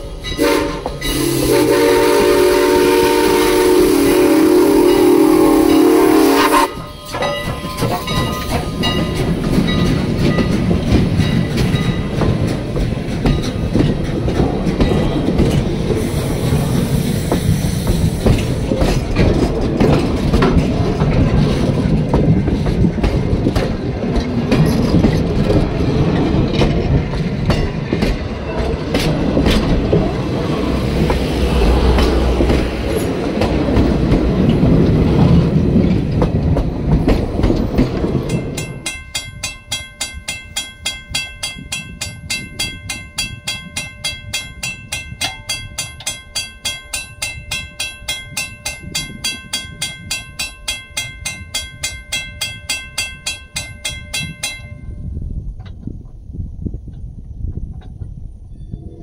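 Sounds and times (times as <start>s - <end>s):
railroad crossing bell ringing: 0.0s - 1.2s, 4.8s - 12.2s, 38.2s - 55.2s
train wheels clattering on rails: 0.0s - 56.2s.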